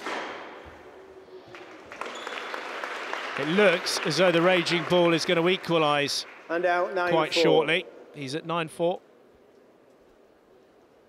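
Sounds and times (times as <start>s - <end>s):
low crowd hum: 0.0s - 11.0s.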